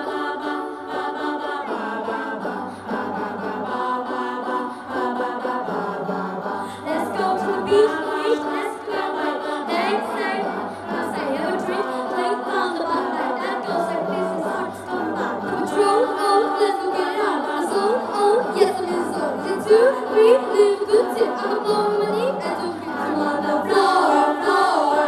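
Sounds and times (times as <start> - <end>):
young voices singing together: 0.0 - 25.0.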